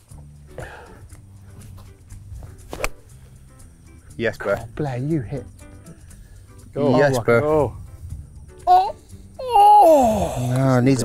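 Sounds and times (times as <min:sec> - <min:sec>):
background music: 0:00.0 - 0:11.0
golf club striking ball: 0:02.5 - 0:03.2.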